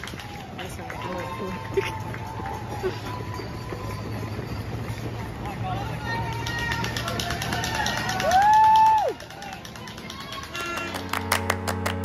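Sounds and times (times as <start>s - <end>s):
street crowd noise: 0.0s - 12.0s
spectator cheer: 7.0s - 11.0s.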